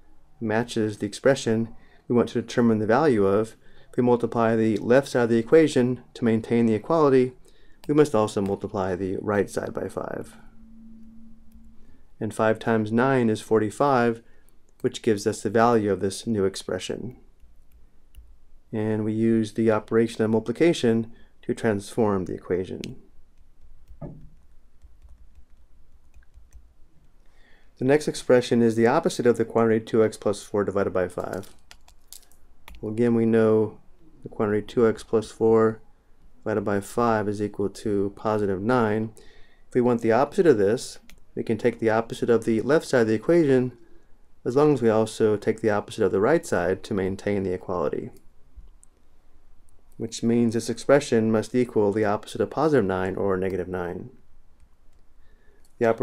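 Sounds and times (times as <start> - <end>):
low steady hum: 0.0 - 56.0
stylus tapping and scratching: 22.8 - 27.2, 31.2 - 32.8
faint small clicks: 31.2 - 32.8, 48.2 - 50.0.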